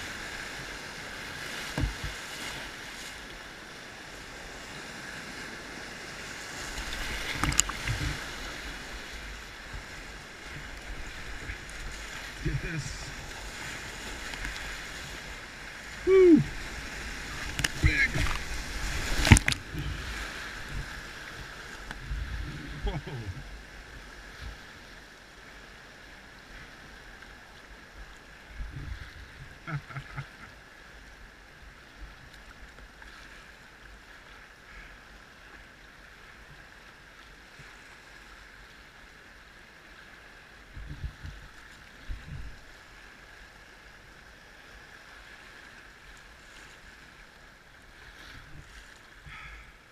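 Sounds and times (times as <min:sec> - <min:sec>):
whitewater breaking over kayak: 0:00.0 - 0:24.9
river rushing: 0:00.0 - 0:40.8
short splashes against hull: 0:16.4 - 0:22.0.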